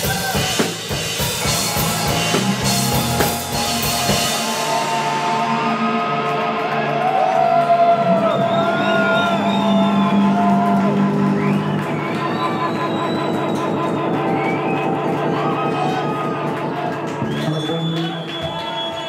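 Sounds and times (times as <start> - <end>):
live rock band playing: 0.0 - 18.6
crowd cheering and whooping: 1.4 - 19.0.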